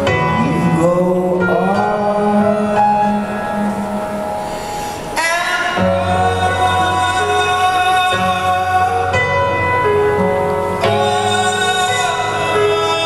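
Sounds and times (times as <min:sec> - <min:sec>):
man singing: 0:00.0 - 0:04.4, 0:05.0 - 0:13.0
piano chords: 0:00.0 - 0:13.0.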